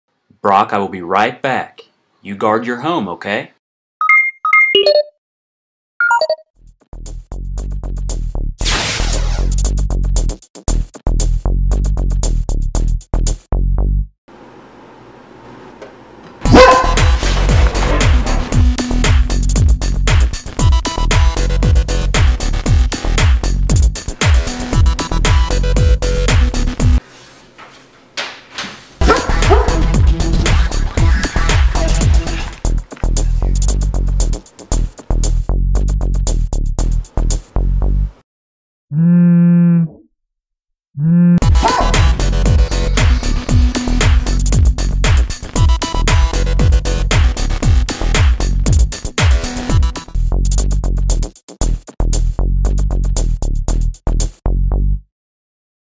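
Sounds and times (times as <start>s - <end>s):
electronic keypad beeps: 4.0s - 5.2s, 6.0s - 6.4s
dog barking: 16.4s - 18.4s, 29.0s - 30.3s, 31.6s - 32.6s, 41.4s - 42.3s
electronic music with deep bass: 17.0s - 27.0s, 29.1s - 37.0s, 41.3s - 53.3s.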